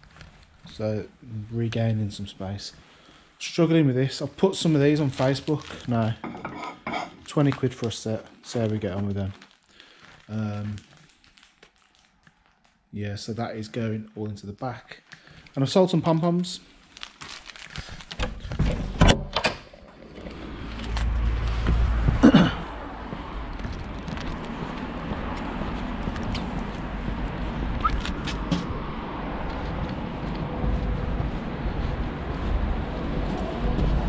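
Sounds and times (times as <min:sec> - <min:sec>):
street traffic noise: 0:20.0 - 0:34.0.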